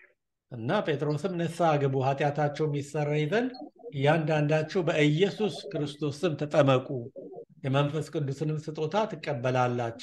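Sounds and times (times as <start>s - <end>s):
man speaking: 0.5s - 10.0s.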